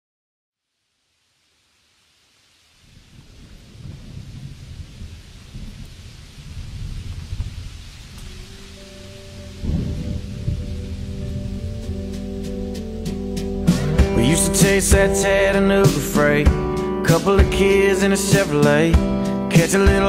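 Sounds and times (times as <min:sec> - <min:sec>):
steady rain: 0:00.8 - 0:14.1
rolling thunder: 0:02.8 - 0:12.7
sustained instrumental notes: 0:08.2 - 0:18.2.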